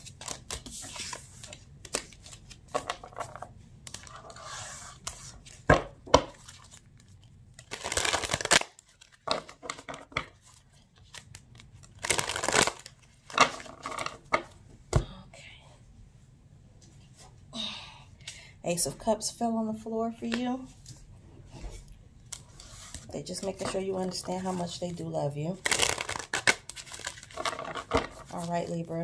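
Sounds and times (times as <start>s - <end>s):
cards being shuffled: 0.0s - 14.3s, 25.6s - 29.0s.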